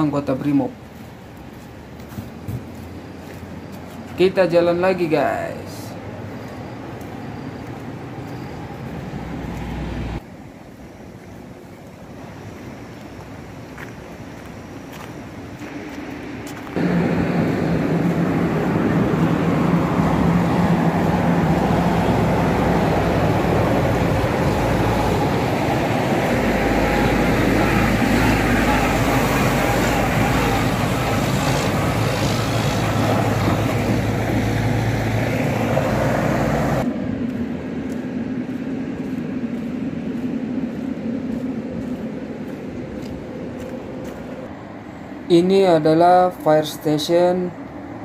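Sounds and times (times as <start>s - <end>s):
diesel truck engine running: 16.8s - 44.5s.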